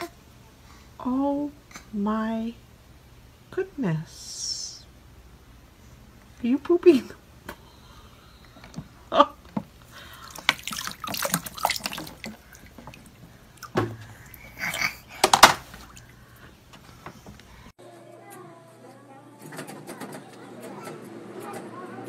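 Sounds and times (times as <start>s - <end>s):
feet splashing in shallow water: 10.2s - 13.7s.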